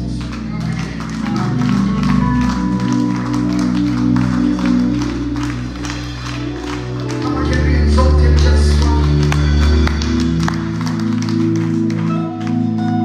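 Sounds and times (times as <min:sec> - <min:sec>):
steady bass line: 0:00.0 - 0:13.0
sustained keyboard chords: 0:00.0 - 0:13.0.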